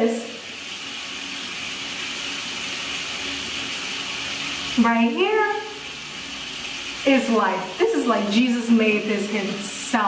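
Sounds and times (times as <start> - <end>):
shower water running: 0.0 - 10.0.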